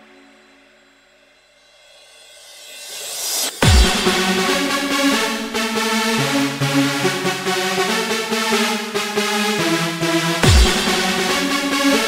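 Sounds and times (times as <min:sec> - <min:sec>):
synth pad chord: 0:03.6 - 0:12.0.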